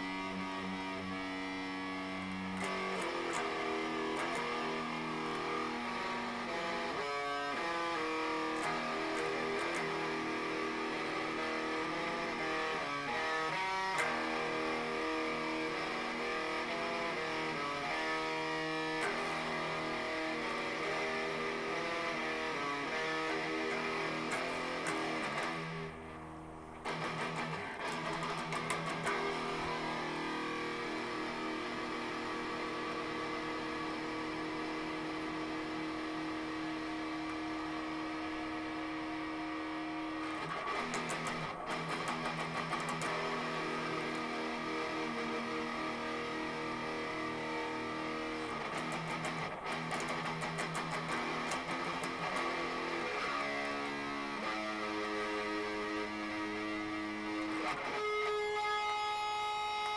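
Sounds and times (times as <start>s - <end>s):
electric guitar playing: 0.0s - 59.9s.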